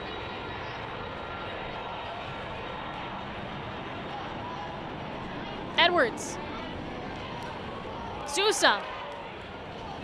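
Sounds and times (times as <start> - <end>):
open-air crowd noise: 0.0 - 10.0.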